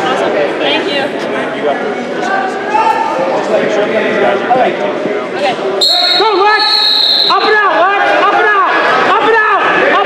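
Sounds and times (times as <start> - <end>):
whistle blast: 5.8 - 7.6.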